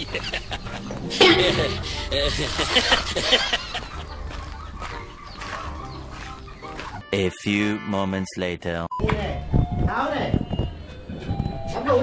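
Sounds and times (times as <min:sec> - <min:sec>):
chickens clucking: 0:00.0 - 0:07.0.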